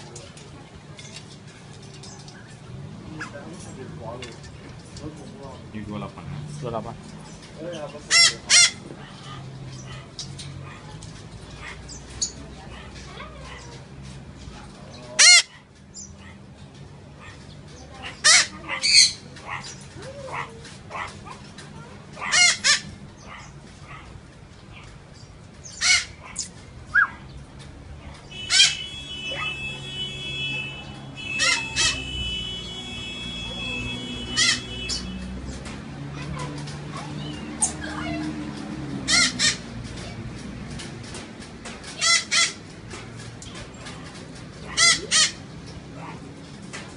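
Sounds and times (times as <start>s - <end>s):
parrot squawking: 8.0s - 8.8s, 15.2s - 15.5s, 18.0s - 21.1s, 22.2s - 23.5s, 25.6s - 27.2s, 28.3s - 35.2s, 39.1s - 39.7s, 42.0s - 42.6s, 44.6s - 45.5s.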